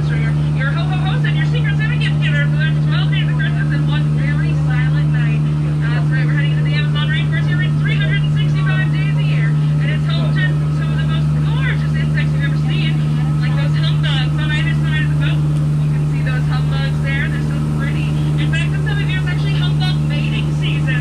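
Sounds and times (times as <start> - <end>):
boat motor droning: 0.0 - 21.0.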